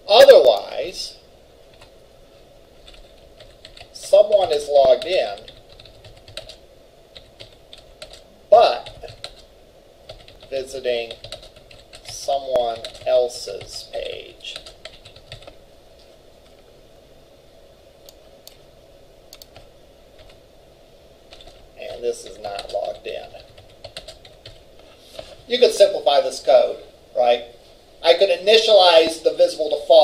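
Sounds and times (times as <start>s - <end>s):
person speaking: 0.0s - 1.3s, 3.5s - 6.4s, 7.2s - 9.5s, 10.1s - 15.6s, 21.3s - 30.0s
computer keyboard typing: 2.8s - 9.5s, 10.1s - 13.8s, 14.6s - 15.6s, 19.3s - 20.4s, 21.3s - 24.6s.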